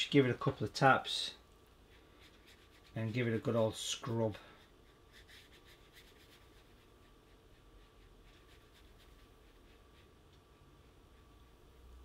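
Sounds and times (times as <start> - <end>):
brush scratching on paper: 1.7 - 11.5.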